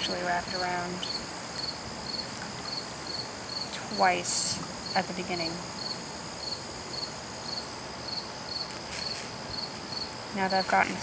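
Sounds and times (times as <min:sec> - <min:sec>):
cricket chirping: 0:00.0 - 0:11.0
faint hiss: 0:00.0 - 0:11.0.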